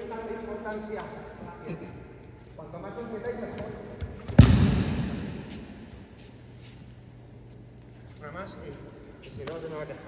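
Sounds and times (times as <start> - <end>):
low steady hum: 0.0 - 10.0
body slapping on mats echoing: 3.6 - 5.9.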